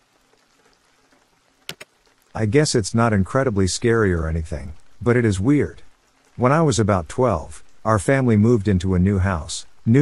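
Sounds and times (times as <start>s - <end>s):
faint rain hiss: 0.0s - 10.0s.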